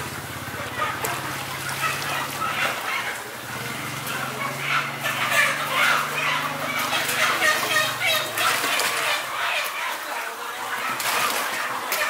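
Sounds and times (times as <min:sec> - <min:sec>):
water sloshing and splashing in a pot: 0:00.0 - 0:12.0.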